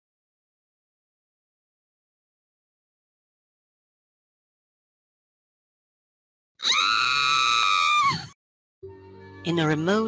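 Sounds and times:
person screaming: 6.6 - 8.4.

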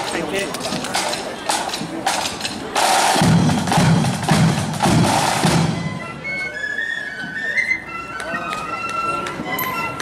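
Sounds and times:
people talking: 0.0 - 3.2, 5.9 - 10.0
side-drum strokes: 0.0 - 6.1
flute band playing: 0.9 - 10.0.

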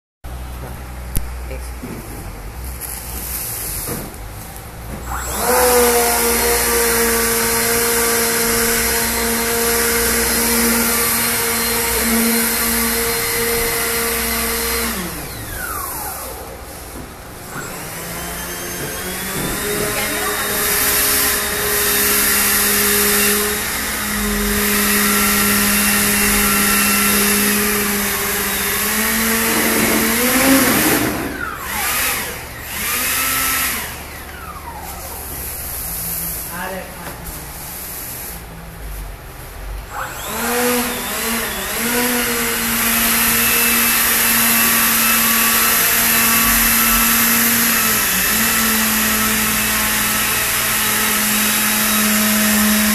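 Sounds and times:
small electric fan whining: 0.4 - 52.9.

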